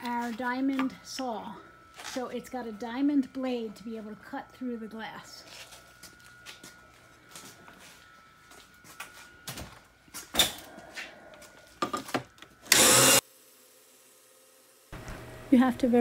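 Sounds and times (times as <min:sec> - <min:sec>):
faint steady whine: 0:00.0 - 0:16.0.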